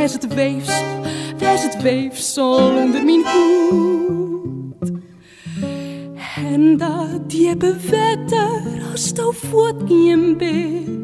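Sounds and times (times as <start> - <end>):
acoustic guitar plucking: 0.0 - 11.0.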